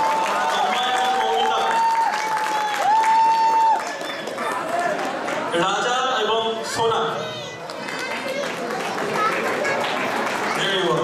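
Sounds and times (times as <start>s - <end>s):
people clapping: 0.0s - 5.8s, 7.6s - 11.0s
crowd noise: 0.0s - 11.0s.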